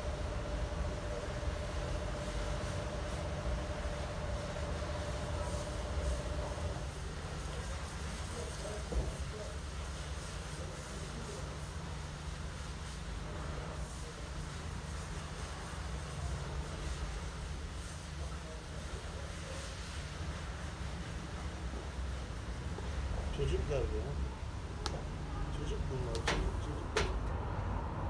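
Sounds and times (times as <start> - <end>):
steady low rumble with hiss: 0.0 - 28.0
soft knock: 26.2 - 27.4.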